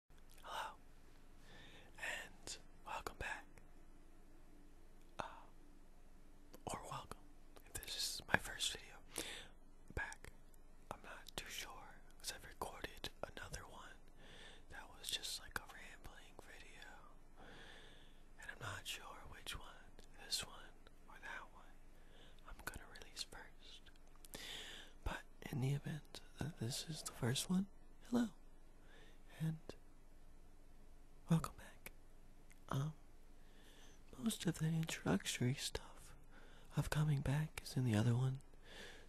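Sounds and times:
person whispering: 0.3 - 0.8, 1.9 - 3.6, 5.1 - 5.6, 6.5 - 17.2, 18.4 - 29.8, 31.2 - 33.0, 34.0 - 38.5.

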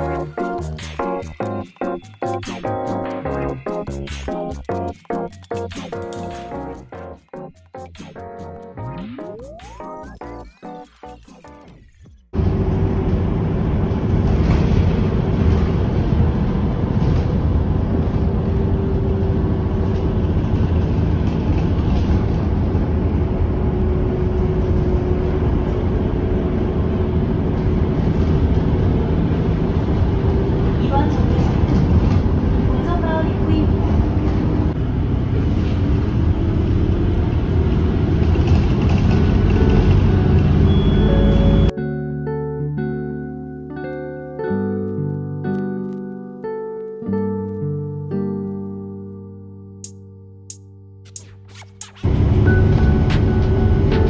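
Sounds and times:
bus engine and road rumble: 12.3 - 41.8, 51.2 - 54.0.

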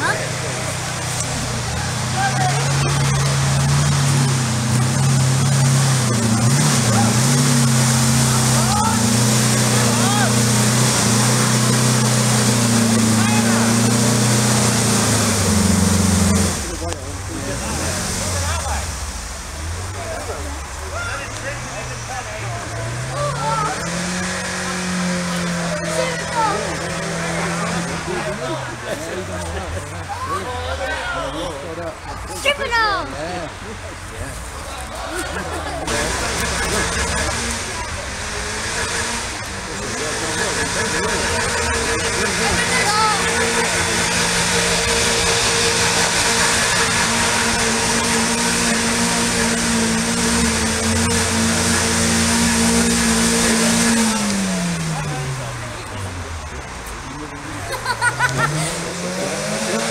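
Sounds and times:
buggy engine revving: 0.0 - 59.9
spectators' voices: 0.0 - 59.9.

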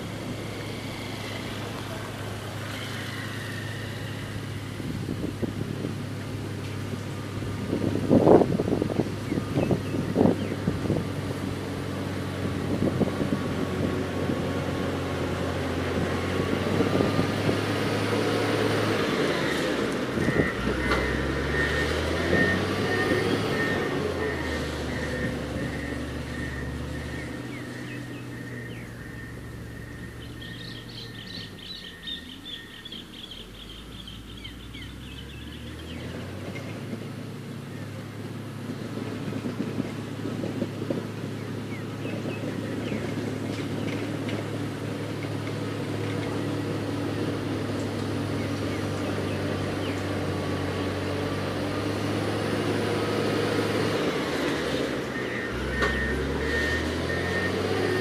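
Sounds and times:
motor grader diesel engine: 0.0 - 58.0.

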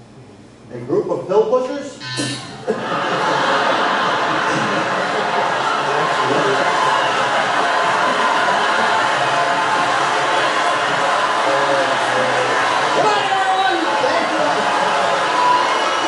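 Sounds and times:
studio audience noise: 2.0 - 16.0.

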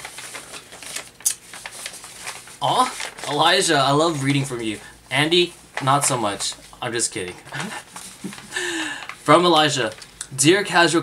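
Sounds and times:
sharp paper crack: 0.0 - 4.5
paper crackling: 0.0 - 10.4.

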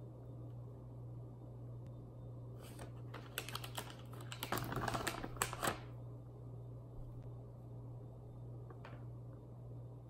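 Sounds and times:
plastic packaging crinkling: 2.7 - 5.9.

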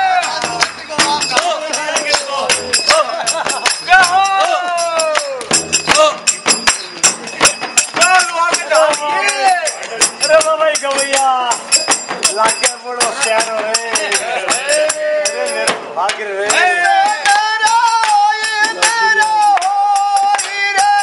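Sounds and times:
metallic jingling: 0.0 - 15.8
voices singing folk song: 0.0 - 21.0.

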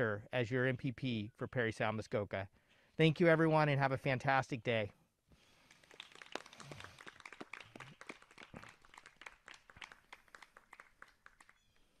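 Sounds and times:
people clapping: 5.6 - 12.0.

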